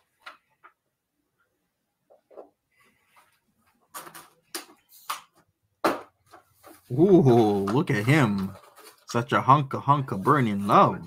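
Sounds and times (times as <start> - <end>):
paper rustling and crackling: 6.2 - 11.0.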